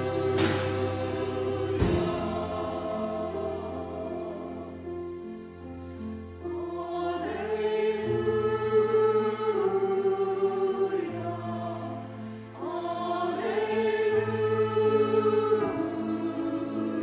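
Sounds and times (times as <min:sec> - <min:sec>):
mixed choir singing: 0:00.0 - 0:05.3, 0:06.4 - 0:17.0
keyboard accompaniment: 0:00.0 - 0:17.0.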